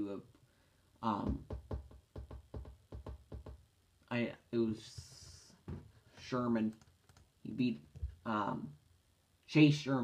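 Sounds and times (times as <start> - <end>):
soft knocks on hard surface: 1.2 - 3.6, 5.7 - 5.9.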